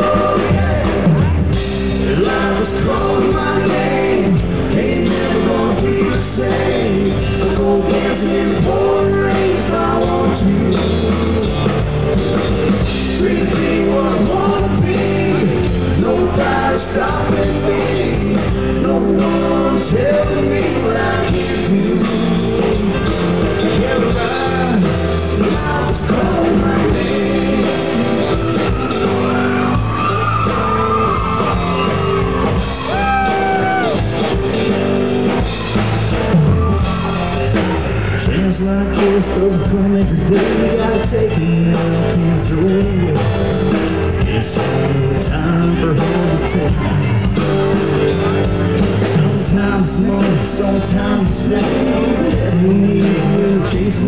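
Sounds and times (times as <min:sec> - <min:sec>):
acoustic guitar: 0:00.0 - 0:54.0
electric bass: 0:00.0 - 0:54.0
electric guitar: 0:00.0 - 0:54.0
live country band: 0:00.0 - 0:54.0.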